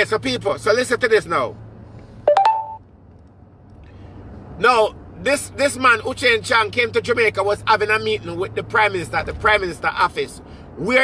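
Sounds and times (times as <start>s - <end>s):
rising electronic beeps: 2.3s - 2.8s.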